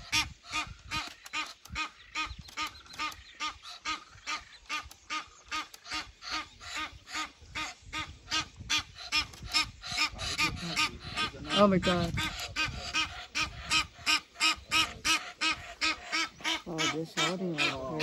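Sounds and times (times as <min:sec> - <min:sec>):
duck quacking: 0:00.0 - 0:18.0.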